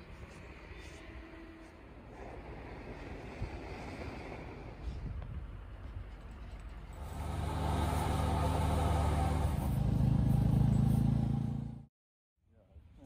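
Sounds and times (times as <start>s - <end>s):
engine running: 6.9s - 11.9s.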